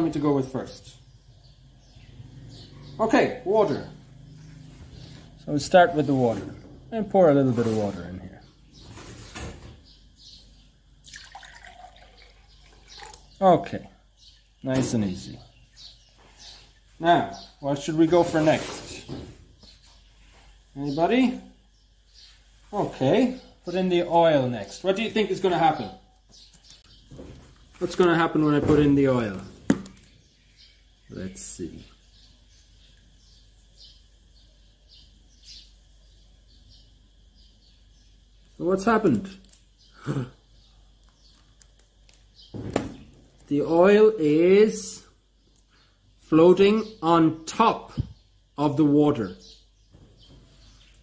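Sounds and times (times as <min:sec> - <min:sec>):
small birds chirping: 0:00.0 - 0:51.0
water pouring into a glass: 0:11.1 - 0:13.3.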